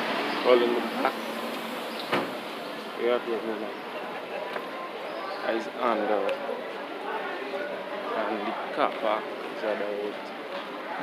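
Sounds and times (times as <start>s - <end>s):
town street background noise: 0.0s - 11.0s
sharp knock: 2.1s - 2.4s.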